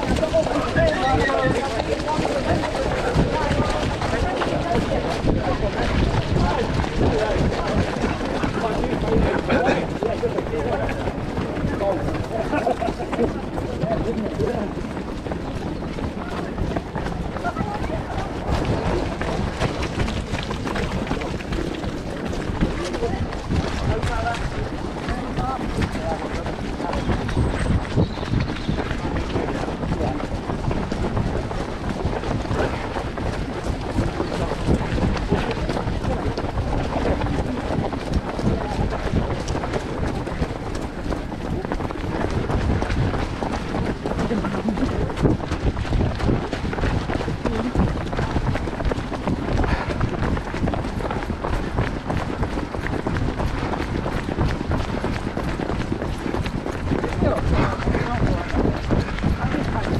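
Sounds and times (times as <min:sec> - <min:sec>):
indistinct chatter: 0:00.0 - 0:50.1
footsteps of runners on tarmac: 0:00.0 - 0:59.9
wind buffeting microphone: 0:00.0 - 0:59.9.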